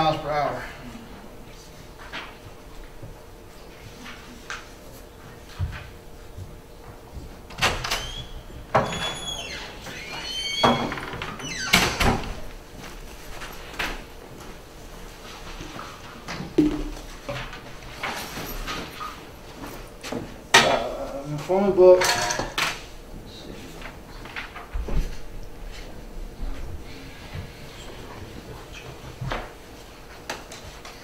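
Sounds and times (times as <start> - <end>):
knocks and clicks: 16.6 - 17.0.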